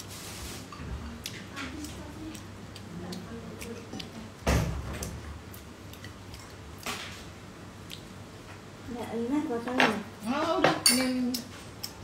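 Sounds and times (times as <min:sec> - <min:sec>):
cutlery clinking on a plate: 0:10.6 - 0:11.2.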